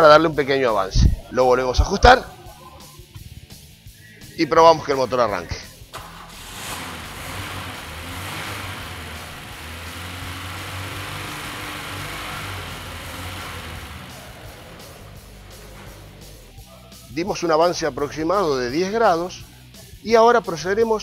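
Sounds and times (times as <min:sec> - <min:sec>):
background music: 0:00.0 - 0:21.0
engine starting and idling: 0:05.8 - 0:16.7.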